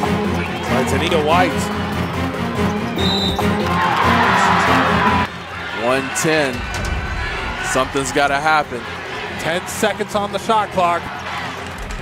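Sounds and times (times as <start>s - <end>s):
arena crowd cheering: 0.0s - 12.0s
background music: 0.0s - 12.0s
high whistle: 3.0s - 3.5s.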